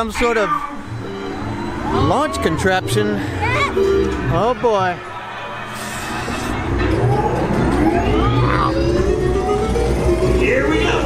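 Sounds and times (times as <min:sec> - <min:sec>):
ride music playing: 0:00.6 - 0:11.0
rising whine of launch motors: 0:00.8 - 0:11.0
low wheel rumble: 0:06.1 - 0:11.0.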